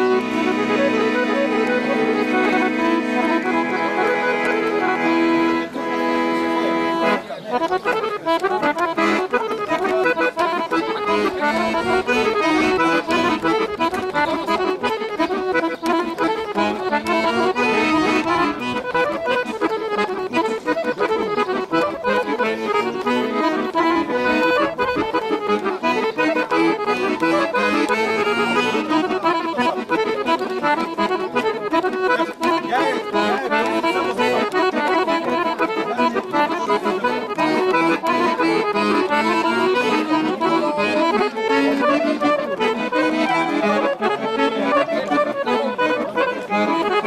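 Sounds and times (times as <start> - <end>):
button accordion playing fast tune: 0.0 - 47.0.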